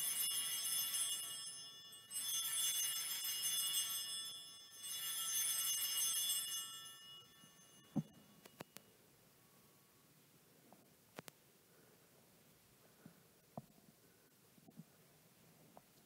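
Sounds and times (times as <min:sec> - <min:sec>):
altar bells jingling: 0:00.0 - 0:09.0.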